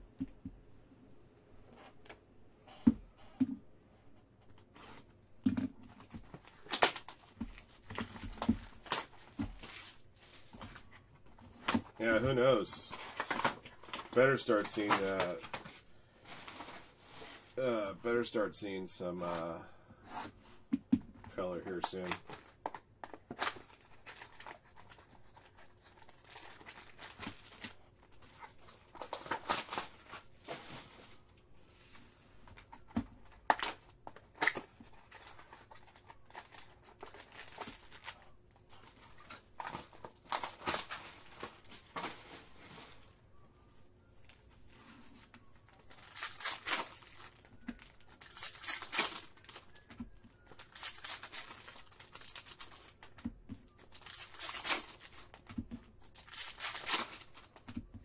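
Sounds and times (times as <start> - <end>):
foil wrappers tearing and crinkling: 6.4 - 10.1, 23.2 - 30.7, 33.4 - 41.7, 45.7 - 53.1, 53.7 - 57.6.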